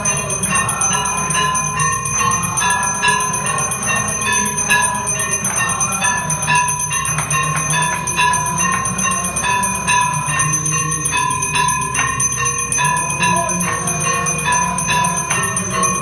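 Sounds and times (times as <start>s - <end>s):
temple bells ringing: 0.0s - 16.0s.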